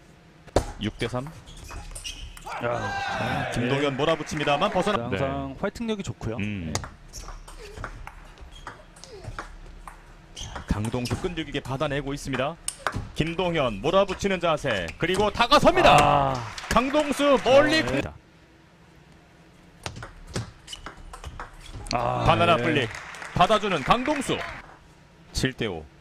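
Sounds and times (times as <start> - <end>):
table tennis ball hits: 6.8 - 11.4.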